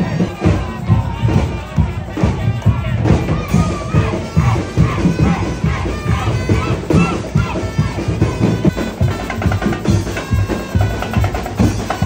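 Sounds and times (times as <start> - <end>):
crowd noise: 0.0 - 12.0
drumbeat with cymbals: 0.0 - 12.0.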